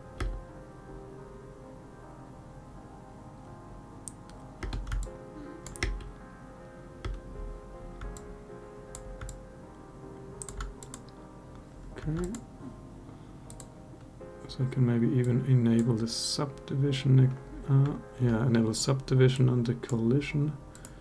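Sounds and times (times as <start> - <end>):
quiet background music: 0.0 - 21.0
computer keyboard key clicks: 4.1 - 6.1, 8.0 - 8.3, 9.0 - 9.4, 10.4 - 11.2, 12.0 - 12.4.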